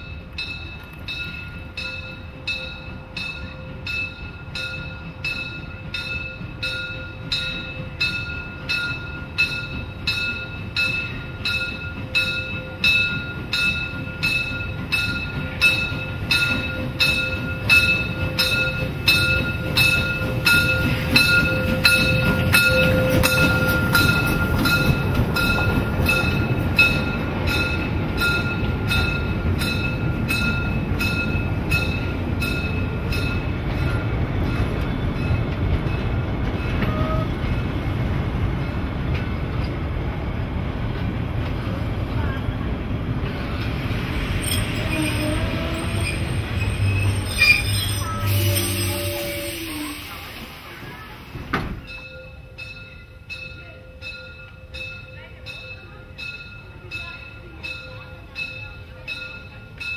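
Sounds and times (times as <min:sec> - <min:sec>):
locomotive warning bell ringing: 0:00.0 - 0:37.8, 0:51.8 - 0:59.9
low rumble of train: 0:00.0 - 0:59.9.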